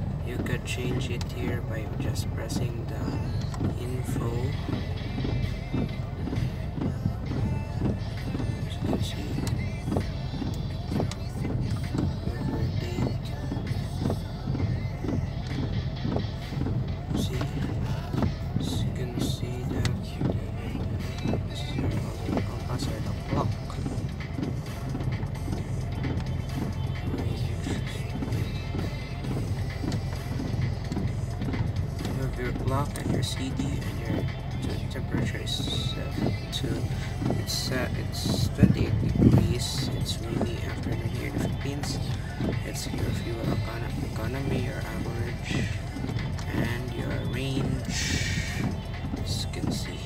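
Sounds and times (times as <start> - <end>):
car engine running: 0.0 - 50.0
music from car stereo: 0.0 - 50.0.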